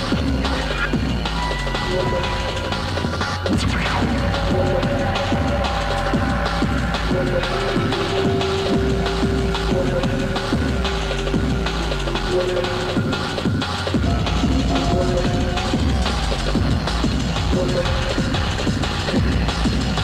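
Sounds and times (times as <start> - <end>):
fast breakbeat drums: 0.0 - 20.0
heavy bass: 0.0 - 20.0.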